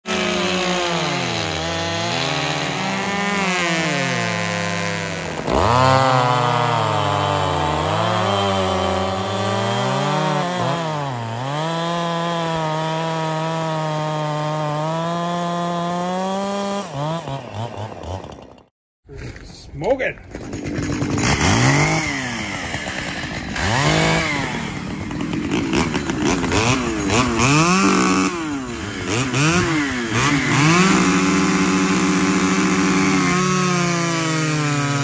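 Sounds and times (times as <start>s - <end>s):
chainsaws revving: 0.0s - 18.7s, 20.3s - 35.0s.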